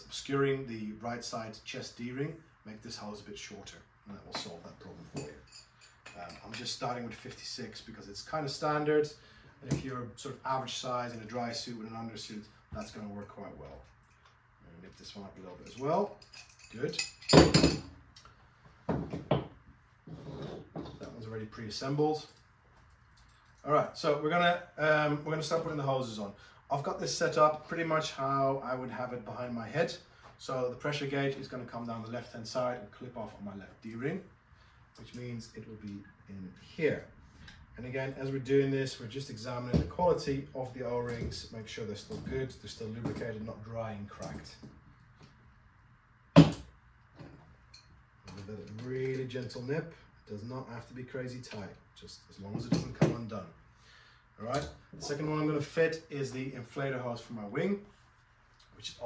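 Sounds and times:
metal spanner clinking on table: 15.6s - 17.9s.

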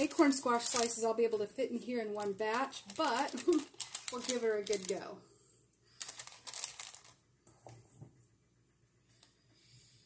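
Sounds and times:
paper crinkling: 0.0s - 5.1s, 6.0s - 7.2s.

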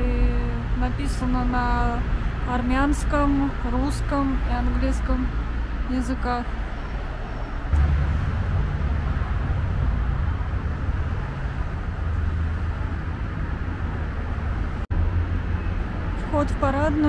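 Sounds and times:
distant traffic: 0.0s - 17.0s
wind on microphone: 0.0s - 17.0s.

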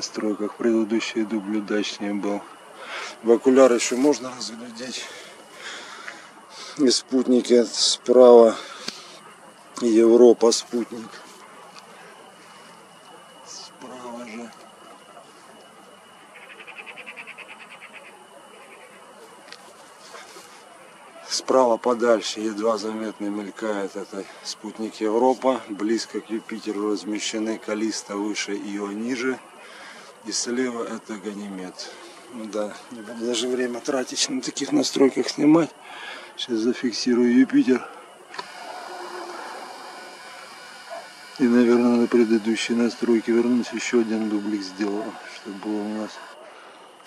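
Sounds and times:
faint high-pitched drone: 0.0s - 47.0s
faint steady hiss: 0.0s - 47.0s
small animal chirping trill: 16.3s - 19.0s.

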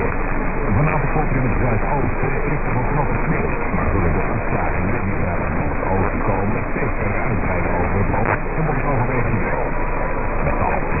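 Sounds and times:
faint voice on am radio: 0.0s - 11.0s
radio static: 0.0s - 11.0s.

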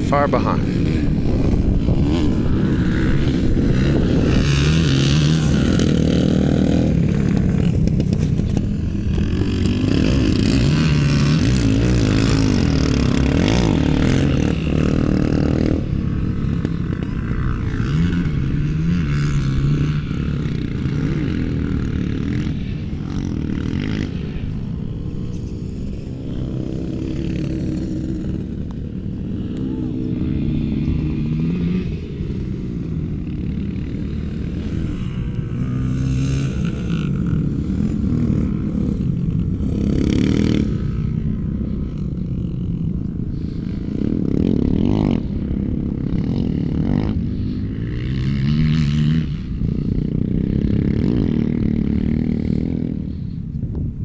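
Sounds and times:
motorcycle engines revving: 0.0s - 54.0s.

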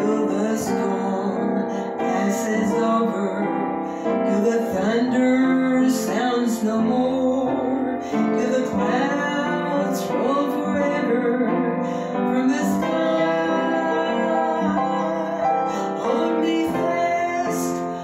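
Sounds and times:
upright piano playing hymn: 0.0s - 18.0s.

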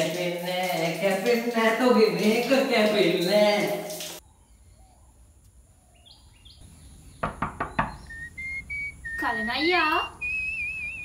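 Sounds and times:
faint bird chirps: 4.2s - 11.0s
knocking on wooden door: 7.2s - 8.1s.

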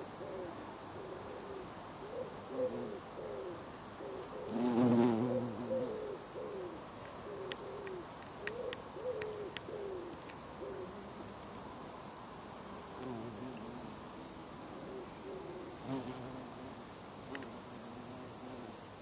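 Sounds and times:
bumblebee buzzing: 4.5s - 5.9s, 13.0s - 14.0s, 15.8s - 18.8s.

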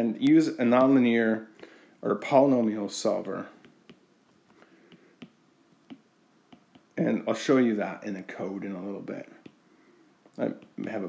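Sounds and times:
stylus tapping on glass screen: 4.9s - 6.9s.

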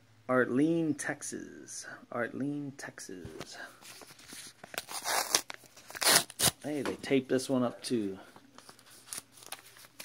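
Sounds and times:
envelope crinkling: 3.9s - 6.6s, 8.6s - 10.0s
envelope ripping: 4.7s - 6.6s.

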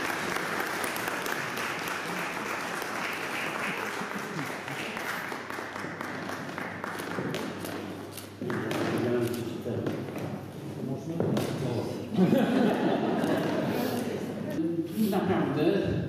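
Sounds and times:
audience applauding: 0.0s - 7.7s.

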